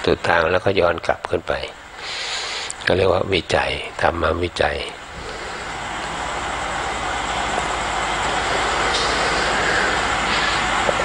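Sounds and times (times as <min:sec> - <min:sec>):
low steady hum: 0:00.0 - 0:11.0
steady rushing noise: 0:01.8 - 0:11.0.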